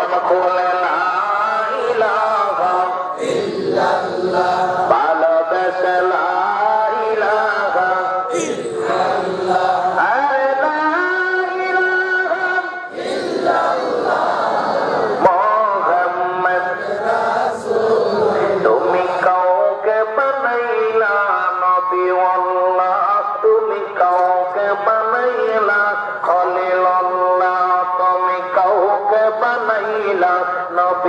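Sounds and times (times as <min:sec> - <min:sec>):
devotional chant with held notes: 0:00.0 - 0:31.0.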